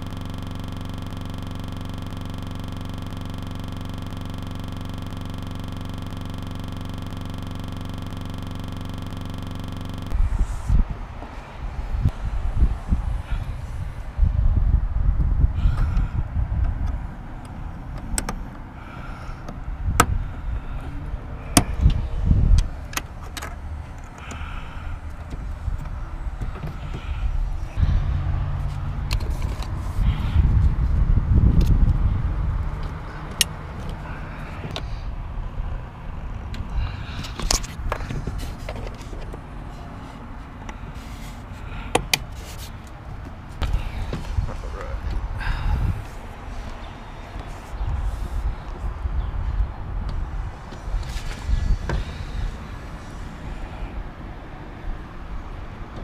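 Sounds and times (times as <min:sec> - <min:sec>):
steady hum: 0:00.0 - 0:49.2
low rumbling: 0:19.6 - 0:38.7.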